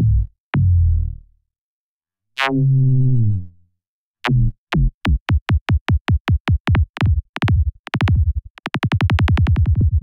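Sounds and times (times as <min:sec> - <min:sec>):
stretched electronic kick drum: 0:04.7 - 0:10.0.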